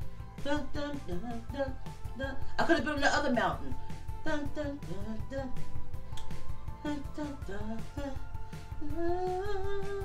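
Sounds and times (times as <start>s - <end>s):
woman singing into microphone: 0.4s - 2.8s, 3.5s - 5.7s, 6.8s - 10.0s.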